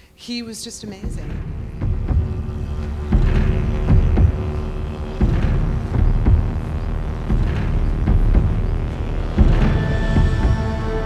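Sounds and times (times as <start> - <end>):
deep rumbling drone: 1.0 - 11.0
low drum hits: 1.0 - 11.0.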